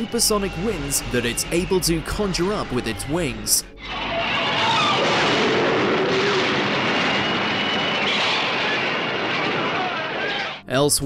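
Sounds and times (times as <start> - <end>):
gale-force wind blowing: 0.0 - 10.6.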